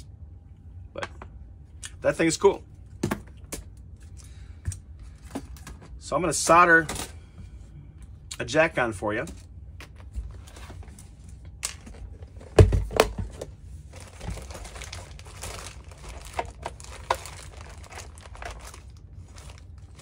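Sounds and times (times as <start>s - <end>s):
plastic bags crinkling: 13.8s - 20.0s.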